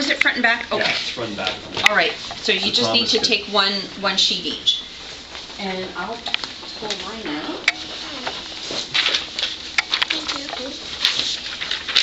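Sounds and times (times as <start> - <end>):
paper rustling and shuffling: 8.0 - 12.0
indistinct voices murmuring: 9.9 - 11.0.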